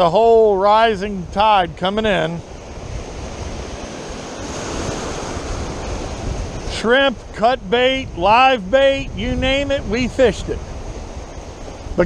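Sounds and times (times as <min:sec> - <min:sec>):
ocean surf on rocks: 0:00.0 - 0:12.0.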